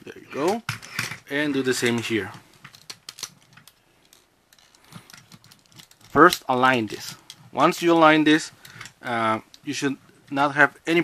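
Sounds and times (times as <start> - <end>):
plastic parts clicking and tapping: 0.4 - 7.4.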